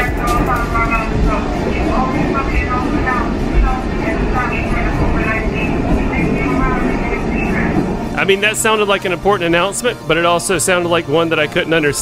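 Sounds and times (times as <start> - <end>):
muffled announcement over speakers: 0.0 - 12.0
train rumbling on track: 0.0 - 12.0.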